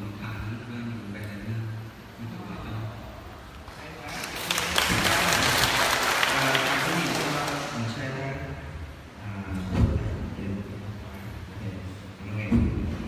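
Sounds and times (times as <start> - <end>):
audience applauding in echoing hall: 3.7 - 8.0.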